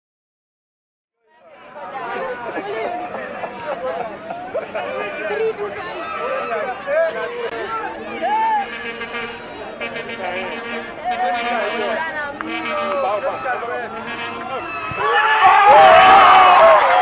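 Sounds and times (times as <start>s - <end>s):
crowd shouting and cheering: 1.2s - 17.0s
spectators shouting and talking: 1.2s - 17.0s.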